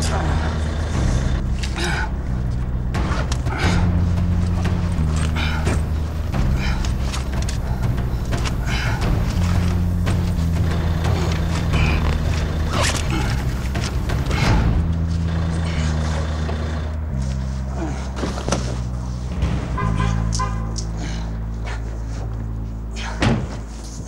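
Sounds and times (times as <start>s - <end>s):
deep held bass notes: 0.0s - 24.0s.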